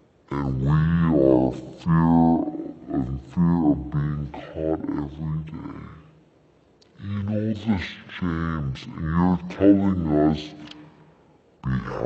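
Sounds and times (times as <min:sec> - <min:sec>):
man speaking: 0:00.3 - 0:06.1, 0:07.0 - 0:10.9, 0:11.6 - 0:12.0.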